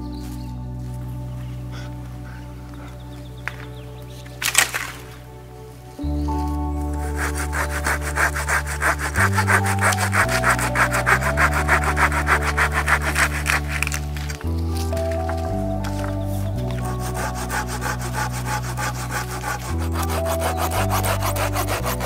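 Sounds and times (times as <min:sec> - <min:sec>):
background music with low chords: 0:00.0 - 0:22.0
hand saw cutting a log: 0:07.0 - 0:14.0, 0:16.8 - 0:22.0.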